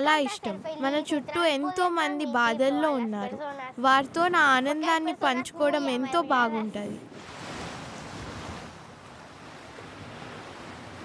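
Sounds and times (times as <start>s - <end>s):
sea waves breaking on beach: 7.0s - 11.0s.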